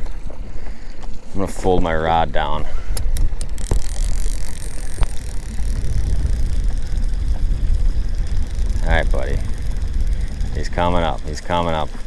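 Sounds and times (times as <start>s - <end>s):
wind buffeting microphone: 2.2s - 12.0s.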